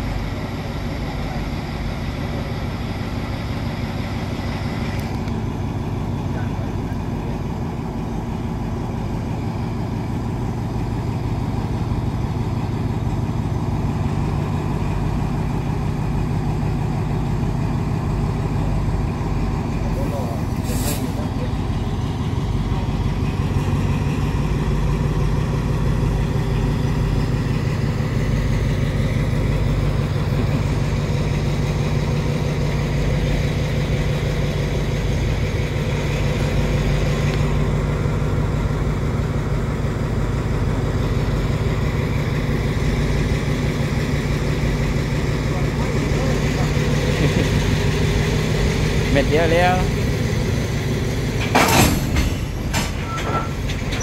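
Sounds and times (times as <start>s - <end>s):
diesel locomotive engine drone: 0.0s - 54.0s
brief hiss: 20.5s - 21.3s.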